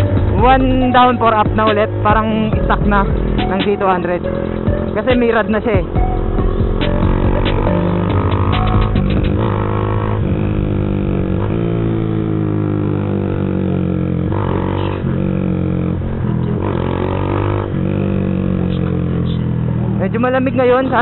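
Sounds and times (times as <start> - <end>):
motorcycle engine running: 0.0 - 21.0.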